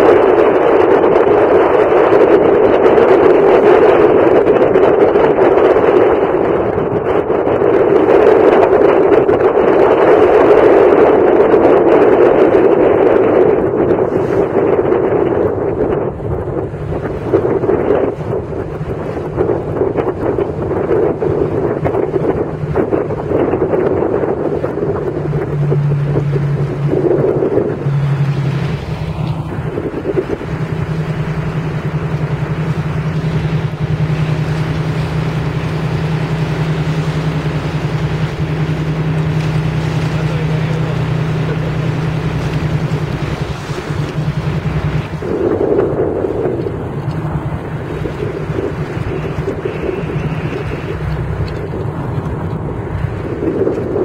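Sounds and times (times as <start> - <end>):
boat engine humming: 0.0 - 54.0
wind on microphone: 0.0 - 54.0.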